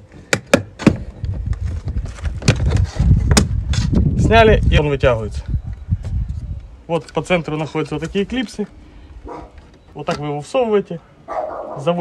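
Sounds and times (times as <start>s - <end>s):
wind rumble on microphone: 0.9s - 7.4s.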